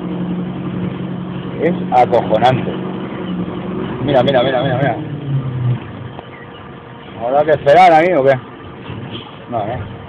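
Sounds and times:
truck engine humming: 0.0 - 10.0.

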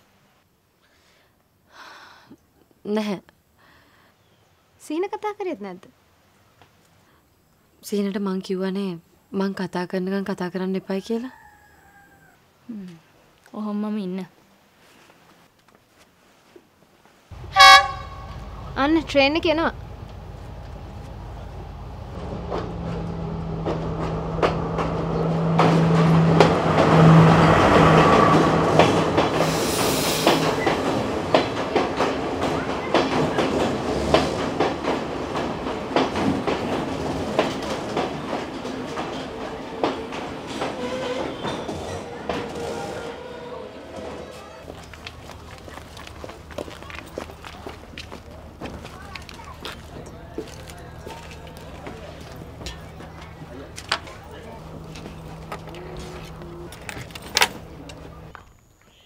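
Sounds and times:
train engine hum: 17.3 - 58.8
train wheels clacking on rails: 22.1 - 58.3
brief hiss: 29.4 - 30.6.

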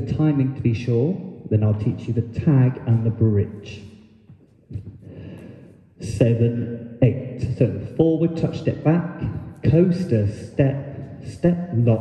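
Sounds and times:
man breathing in: 5.0 - 5.8.

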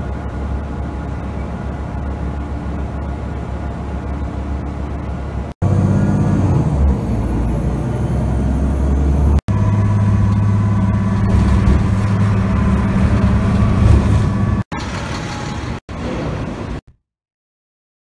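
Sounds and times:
vehicle engine drone and road noise: 0.0 - 16.5.

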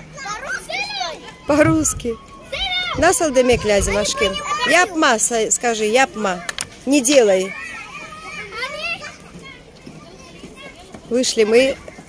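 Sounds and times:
children calling and chattering: 0.0 - 12.0.

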